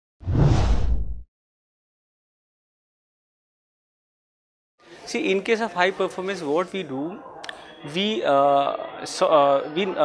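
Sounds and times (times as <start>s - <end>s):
whoosh sound effect: 0.2s - 1.2s.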